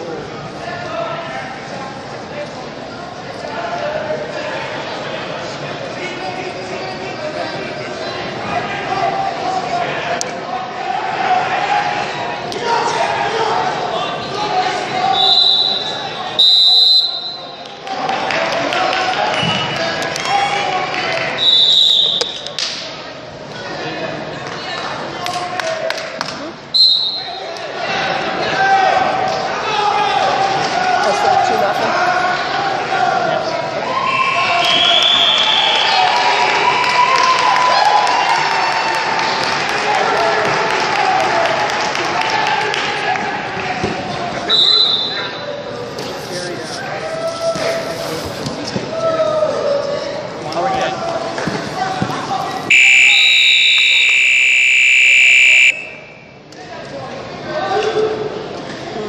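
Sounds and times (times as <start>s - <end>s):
voices calling out echoing: 6.0s - 22.8s, 42.2s - 56.8s
scoreboard buzzer: 52.7s - 56.2s.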